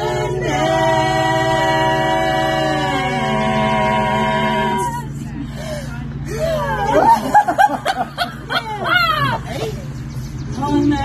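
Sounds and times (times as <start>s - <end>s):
women laughing and exclaiming: 5.9s - 10.1s.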